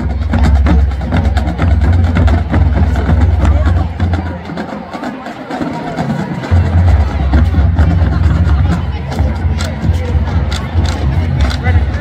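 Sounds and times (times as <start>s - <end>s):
bass drums: 0.0s - 4.5s, 6.4s - 12.0s
crowd voices: 0.0s - 12.0s.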